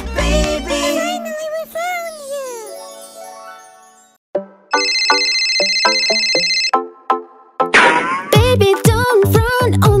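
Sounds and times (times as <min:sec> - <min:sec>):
plucked cartoon music: 0:00.0 - 0:10.0
mobile phone ringtone: 0:04.7 - 0:06.8.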